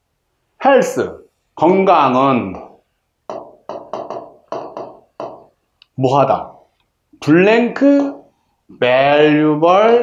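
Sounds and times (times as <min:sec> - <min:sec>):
pen tapping on whiteboard screen: 0:03.3 - 0:05.6, 0:08.0 - 0:08.3.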